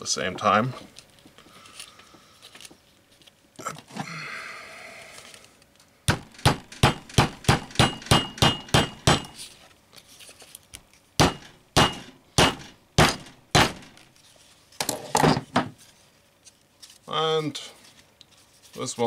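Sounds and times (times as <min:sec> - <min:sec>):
hammer striking rivets on anvil: 0:06.1 - 0:09.4, 0:11.2 - 0:14.0.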